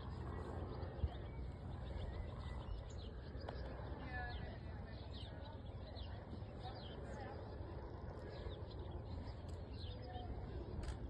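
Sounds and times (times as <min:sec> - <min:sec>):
small birds chirping: 0:00.0 - 0:11.0
wind rumble on microphone: 0:00.0 - 0:11.0.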